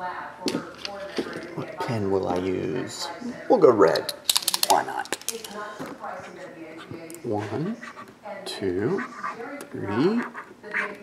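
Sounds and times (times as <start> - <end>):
faint talk radio: 0.0 - 11.0.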